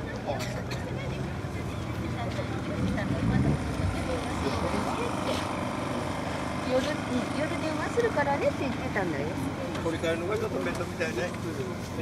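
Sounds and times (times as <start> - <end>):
people talking: 0.0 - 5.6, 6.6 - 12.0.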